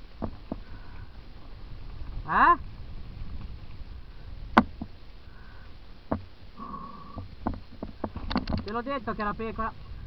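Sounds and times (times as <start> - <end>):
bike rolling on dirt trail: 0.0 - 6.5.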